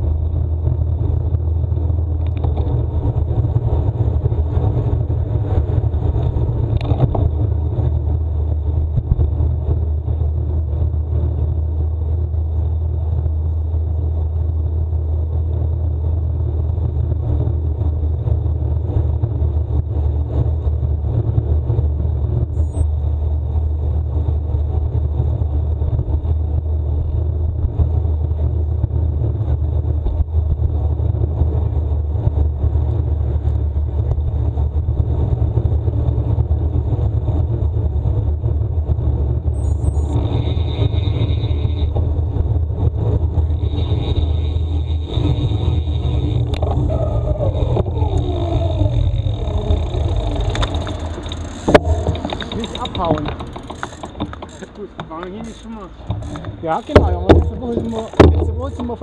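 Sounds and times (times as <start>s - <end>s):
bicycle tyres on asphalt: 0.0s - 59.0s
wind rumble on microphone: 0.0s - 59.0s.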